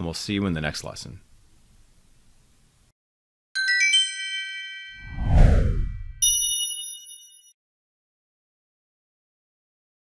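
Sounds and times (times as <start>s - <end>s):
bell-like chimes: 3.6s - 5.2s, 6.2s - 7.6s
bright chime chord: 3.6s - 5.2s, 6.2s - 7.5s
deep downward whoosh: 5.0s - 6.2s.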